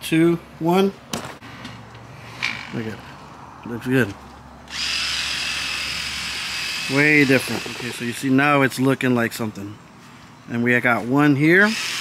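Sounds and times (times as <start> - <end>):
power tool motor whine: 4.7 - 8.1, 11.7 - 12.0.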